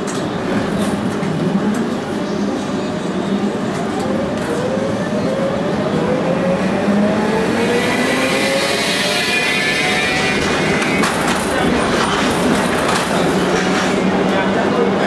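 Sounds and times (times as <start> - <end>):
tram motor whine: 3.5 - 14.6.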